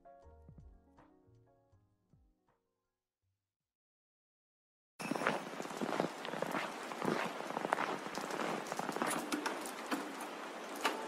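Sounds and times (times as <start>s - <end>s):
soft rain patter: 5.0s - 11.0s
scattered crackles: 5.2s - 11.0s.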